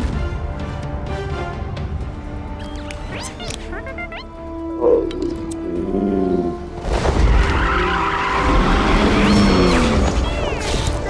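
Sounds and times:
background music: 0.0 - 11.0
dragon growl: 4.8 - 6.8, 8.4 - 10.1.

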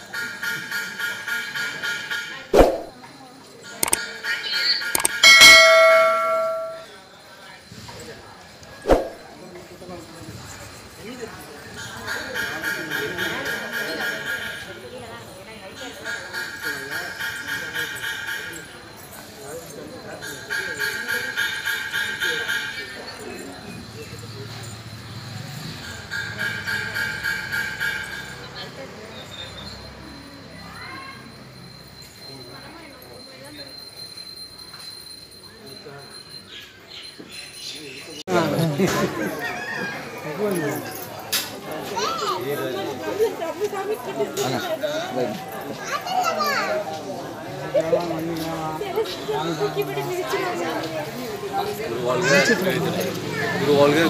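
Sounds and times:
murmur of voices: 0.0 - 54.0
indistinct voices talking: 1.5 - 7.0
bell ringing: 5.0 - 7.0
rhythmic metallic bell ringing: 5.0 - 7.0, 29.7 - 36.5.

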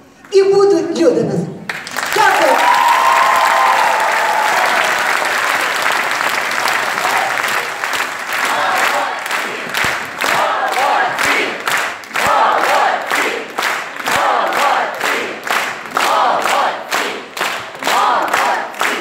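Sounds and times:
rhythmic clapping in unison: 1.6 - 19.0
audience applauding and cheering: 1.7 - 19.0
long held shout: 2.2 - 5.3.

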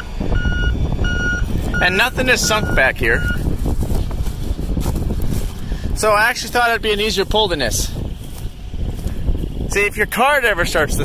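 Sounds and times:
reversing alarm beeping: 0.0 - 3.4
low uneven rumble: 0.0 - 11.0.

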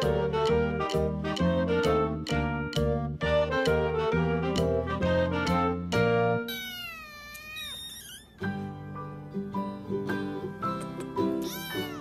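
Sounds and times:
background music: 0.0 - 6.5
kitten meowing: 6.5 - 8.4, 11.4 - 12.0.

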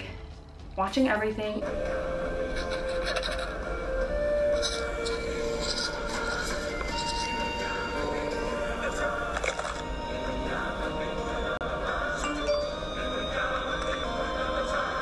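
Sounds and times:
film music: 0.0 - 15.0.

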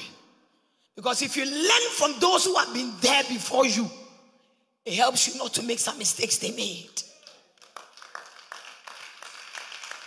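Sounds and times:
scattered hand clapping: 7.2 - 10.0.

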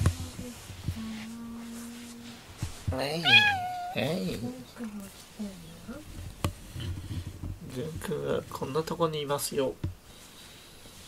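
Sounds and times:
cat meowing: 3.2 - 4.2.

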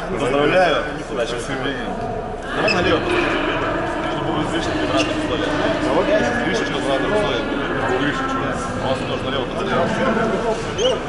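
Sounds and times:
men chattering in echoing hall: 0.0 - 11.0.

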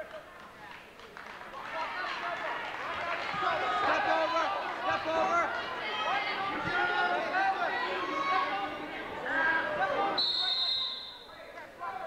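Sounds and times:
crowd talking in echoing hall: 0.0 - 12.0.

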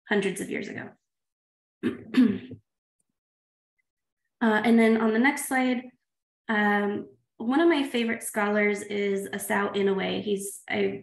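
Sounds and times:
woman clearing throat: 1.8 - 2.6.

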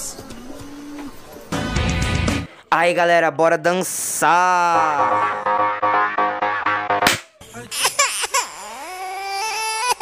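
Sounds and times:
baby-like crying wail: 7.7 - 10.0.

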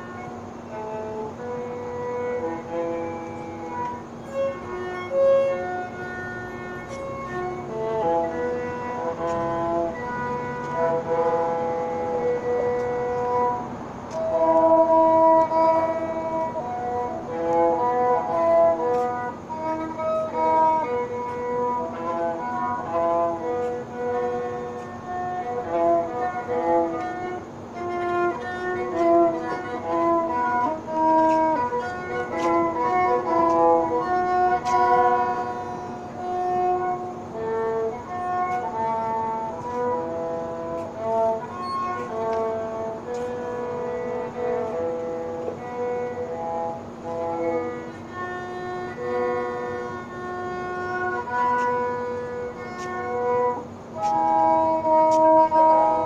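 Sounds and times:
steady low tone: 0.0 - 56.0
violin playing held notes: 0.0 - 56.0.

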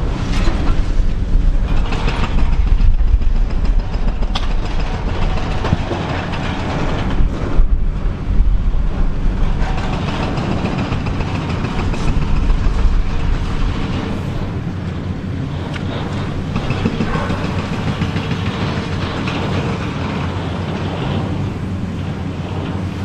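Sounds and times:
excavator diesel engine running: 0.0 - 23.0
sharp cracks: 1.6 - 7.7.

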